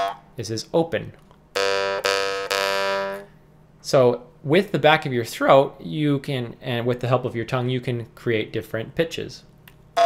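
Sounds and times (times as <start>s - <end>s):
jaw harp twanging: 0.0s - 0.3s.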